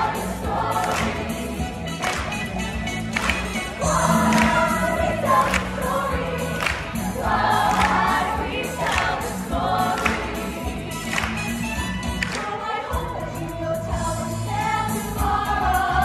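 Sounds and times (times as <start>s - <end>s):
young voices singing together: 0.0s - 2.3s, 3.7s - 11.6s, 12.2s - 16.0s
music with strong beat: 0.0s - 16.0s.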